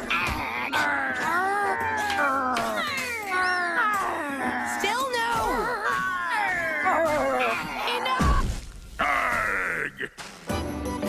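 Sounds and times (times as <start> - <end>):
cartoon characters crying and wailing: 0.0 - 10.1
film score music: 0.0 - 11.0.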